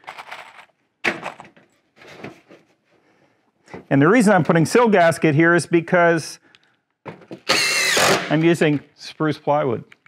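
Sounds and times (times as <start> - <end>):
screws rattling in plastic box: 0.0 - 1.6.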